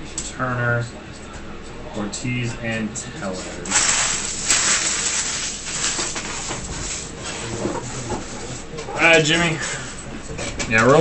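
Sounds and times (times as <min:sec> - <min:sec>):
cards and foil wrappers crinkling: 0:03.7 - 0:07.1.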